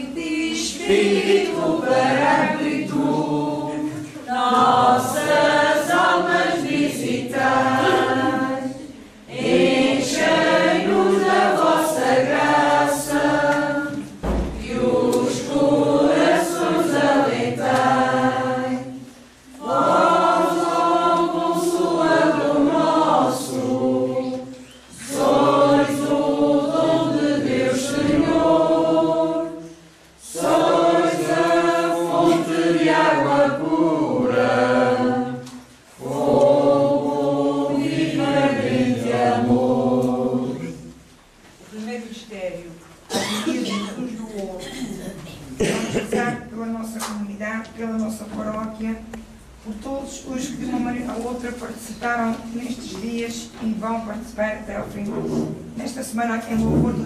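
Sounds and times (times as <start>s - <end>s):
women and children singing: 0.0s - 40.9s.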